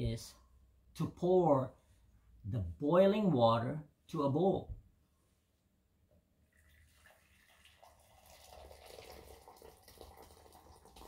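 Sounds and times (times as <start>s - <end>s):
boiling water pouring into cup: 6.4s - 11.0s.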